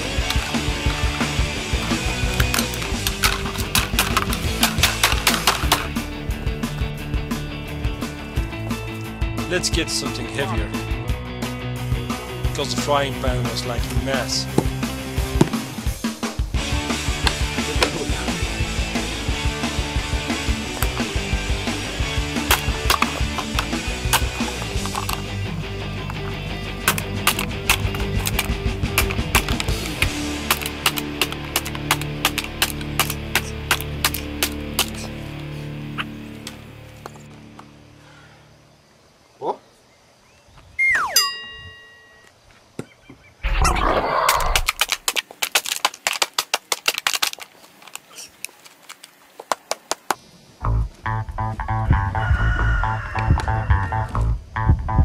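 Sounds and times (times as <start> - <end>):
quick run of clicks: 0.0 - 6.0, 22.3 - 25.4, 26.0 - 35.5, 44.2 - 50.2
background music with drum beat: 0.0 - 35.1, 50.7 - 55.0
sliding whistle-like tone: 40.8 - 42.2.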